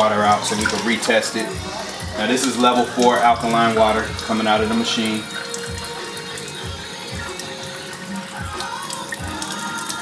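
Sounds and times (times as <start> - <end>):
background music with a beat: 0.0 - 10.0
water streaming into a glass: 0.0 - 10.0.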